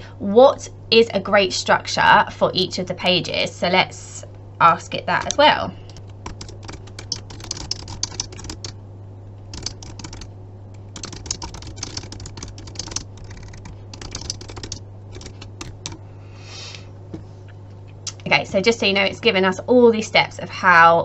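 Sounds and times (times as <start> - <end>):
computer keyboard typing: 5.2 - 8.8, 9.5 - 16.0.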